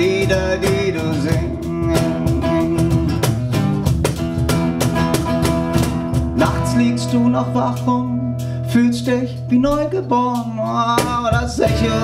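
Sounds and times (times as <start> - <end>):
small drums steady beat: 0.0 - 8.1, 8.8 - 12.0
acoustic guitar strummed: 0.0 - 12.0.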